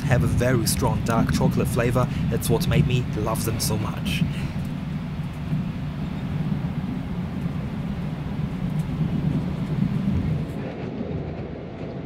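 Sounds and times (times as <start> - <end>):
train carriage rumble: 0.0 - 12.0.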